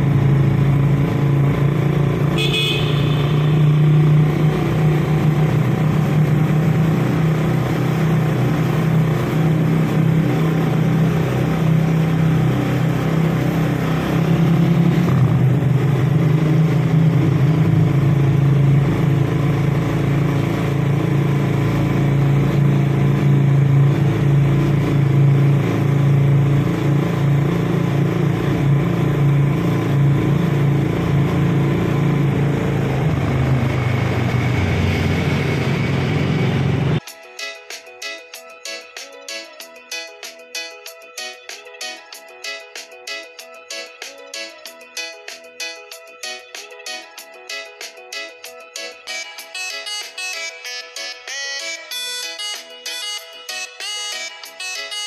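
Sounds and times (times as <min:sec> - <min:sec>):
vehicle engine and tyres droning: 0:00.0 - 0:37.0
high horn toot: 0:02.3 - 0:04.0.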